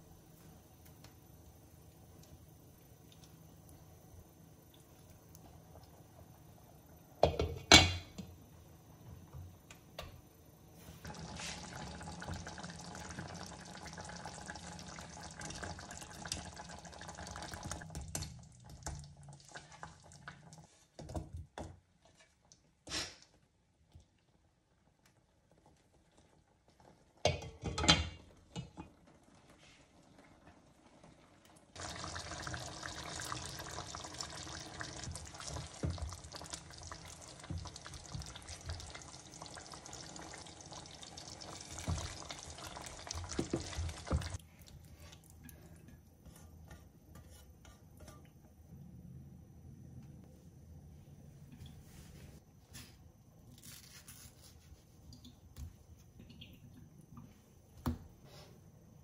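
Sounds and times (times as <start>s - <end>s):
curry simmering and bubbling: 10.5s - 48.2s.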